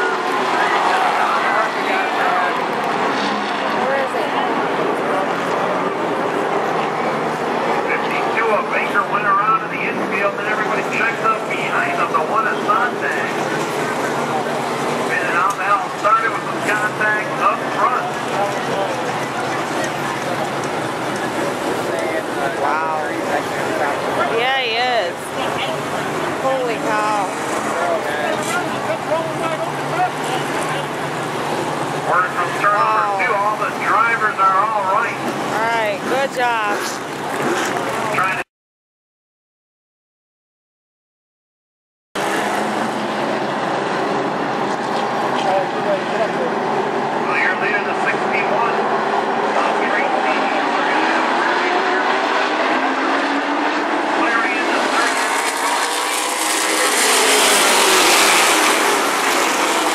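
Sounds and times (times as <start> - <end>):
voices: 0.0 - 31.1, 32.0 - 37.1, 45.4 - 52.2, 54.1 - 55.4
race car engines: 0.0 - 38.4, 42.2 - 59.9
track and crowd noise: 0.0 - 38.4, 42.2 - 59.9.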